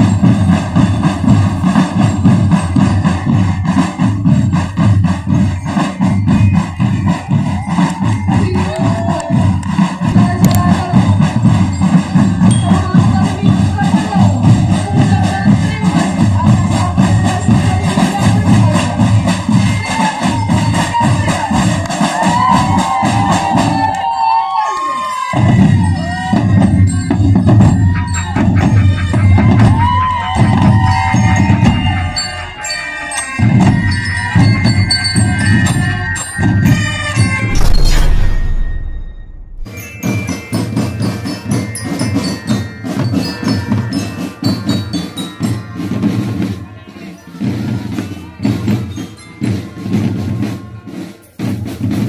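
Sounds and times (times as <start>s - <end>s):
marching drum band playing: 0.0s - 23.9s, 25.4s - 46.6s, 47.4s - 52.0s.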